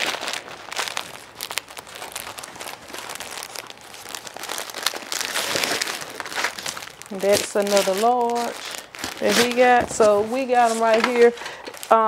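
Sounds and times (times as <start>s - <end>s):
shirts rustling and crinkling: 0.0s - 12.0s.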